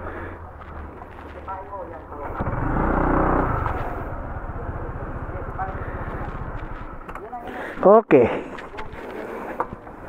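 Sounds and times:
scooter engine revving: 0:02.1 - 0:07.1.

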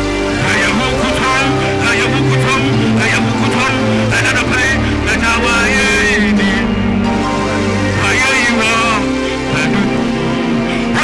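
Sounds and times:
backing music with bass: 0:00.0 - 0:11.0
man singing into microphone: 0:00.0 - 0:11.0.

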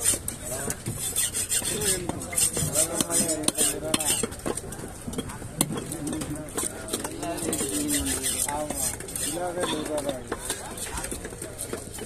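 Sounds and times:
knife rasping through fish: 0:00.9 - 0:04.3, 0:07.5 - 0:11.7.

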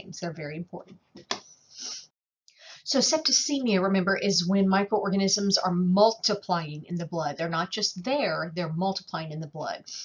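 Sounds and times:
woman speaking: 0:00.0 - 0:00.9, 0:02.7 - 0:10.0
woman breathing softly: 0:01.6 - 0:02.9.

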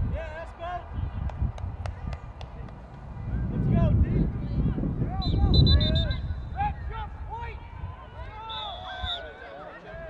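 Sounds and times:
wind rumble on microphone: 0:00.0 - 0:08.4.

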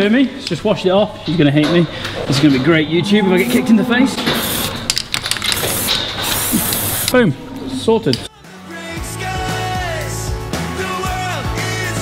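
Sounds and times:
spray bottle spraying: 0:04.2 - 0:07.2.

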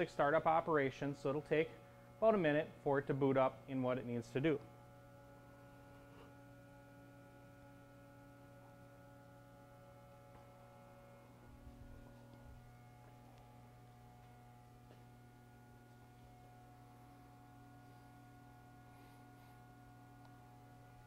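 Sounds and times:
faint electrical hum: 0:00.0 - 0:21.0.

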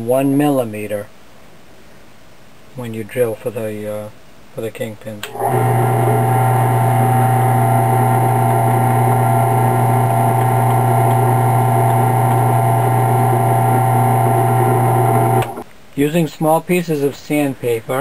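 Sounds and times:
drill bit boring into wood: 0:05.3 - 0:15.6
drill press motor humming: 0:05.3 - 0:15.6.

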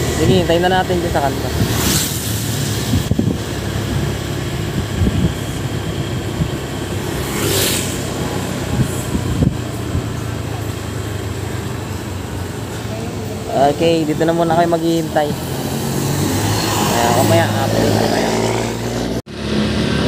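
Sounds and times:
vehicle engine running: 0:00.0 - 0:16.0
vehicle passing: 0:00.0 - 0:20.0.

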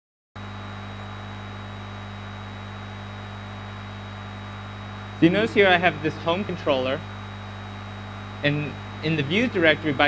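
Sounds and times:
electrical mains hum: 0:00.4 - 0:10.0
thin high steady whine: 0:00.4 - 0:10.0.

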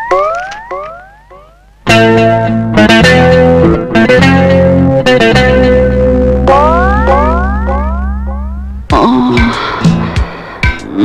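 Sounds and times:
rising boing-like pitch swoops: 0:06.5 - 0:08.7.

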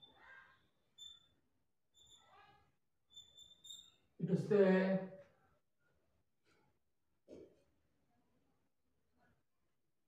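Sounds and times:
faint high chirps: 0:00.0 - 0:04.2.

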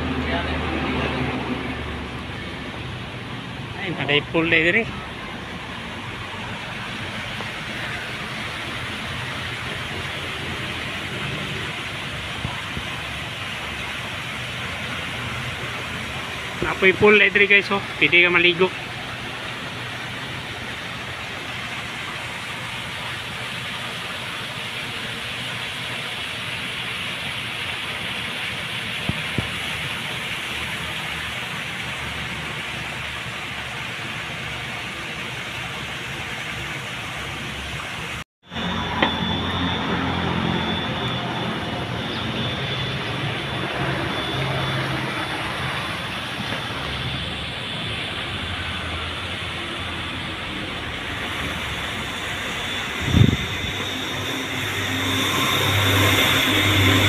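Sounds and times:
steady rushing outdoor noise: 0:00.0 - 0:57.0.

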